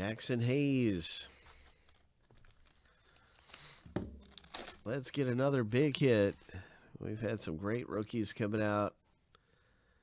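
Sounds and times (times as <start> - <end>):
wrapper crinkling: 1.3 - 6.7.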